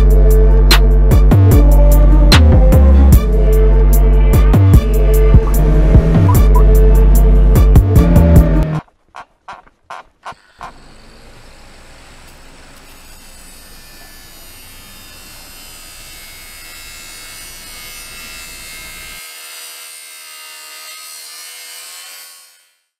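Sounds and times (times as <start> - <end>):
hissing buzzing drone: 0.0 - 8.6, 10.2 - 19.2
low rumble: 1.5 - 8.8.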